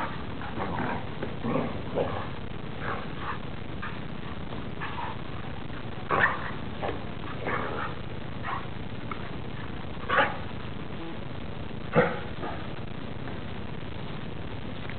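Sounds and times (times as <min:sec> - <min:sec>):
steady hiss: 0:00.0 - 0:14.9.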